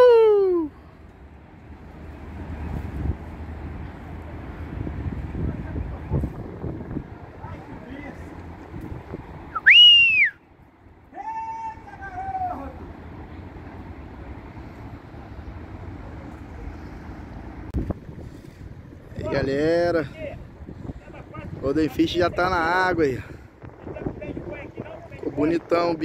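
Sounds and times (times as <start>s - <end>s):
wind: 0.0s - 26.0s
person whistling sharply: 9.6s - 10.4s.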